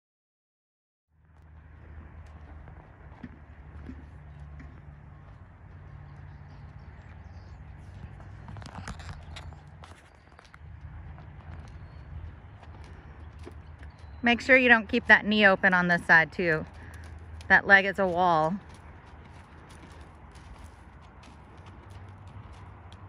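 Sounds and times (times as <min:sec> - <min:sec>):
horse hooves on soft sand: 0:01.3 - 0:23.0.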